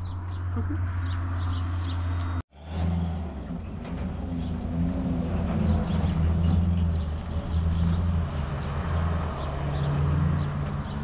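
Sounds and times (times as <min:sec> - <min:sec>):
small birds chirping: 0:00.0 - 0:02.4.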